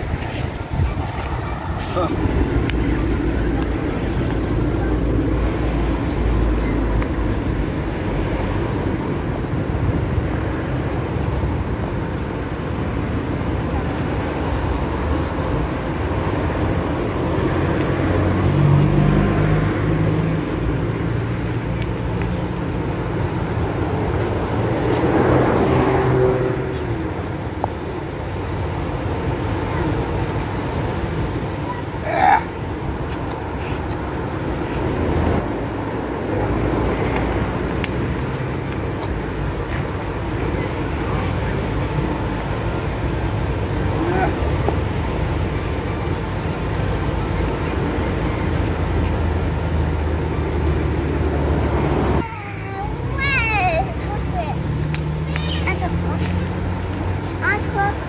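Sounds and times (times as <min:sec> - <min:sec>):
outdoor background rumble: 0:00.0 - 0:58.0.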